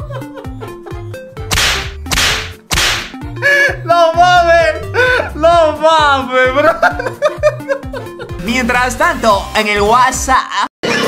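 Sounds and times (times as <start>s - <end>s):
music track with low beat: 0.0s - 10.0s.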